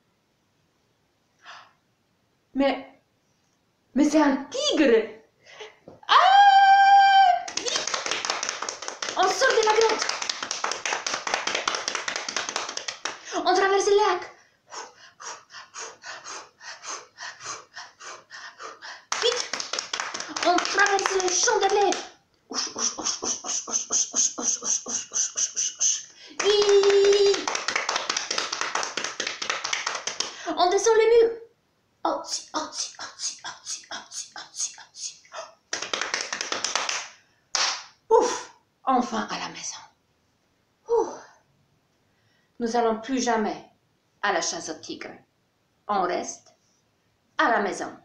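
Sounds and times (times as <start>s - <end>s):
person holding voiced ooh: 6.0s - 7.6s
woman screaming: 6.0s - 7.8s
person making swishing vocal sounds: 22.5s - 27.5s, 32.2s - 35.6s
hands slapping body: 35.7s - 37.9s.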